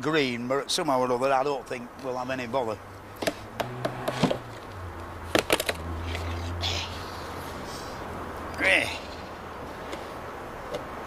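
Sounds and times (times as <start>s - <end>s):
sharp wooden knocks: 3.2s - 4.6s.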